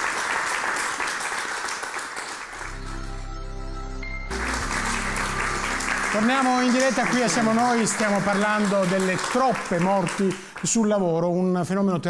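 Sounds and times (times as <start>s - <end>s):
studio audience applauding: 0.0s - 3.3s, 4.3s - 11.3s.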